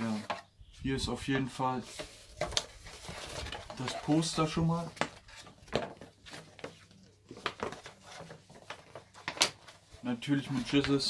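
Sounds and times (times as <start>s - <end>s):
stiff paper rustling and crackling: 1.8s - 11.0s.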